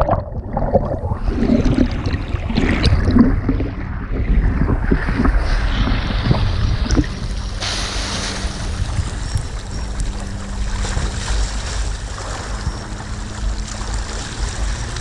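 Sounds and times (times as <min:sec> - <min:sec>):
low engine drone: 0:00.0 - 0:15.0
water sloshing and splashing: 0:00.0 - 0:15.0
water jet spraying: 0:05.2 - 0:15.0.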